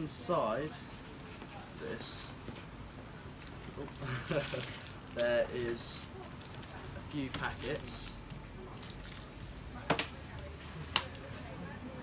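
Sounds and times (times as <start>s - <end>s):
wet squishy handling of packets: 3.3s - 9.8s.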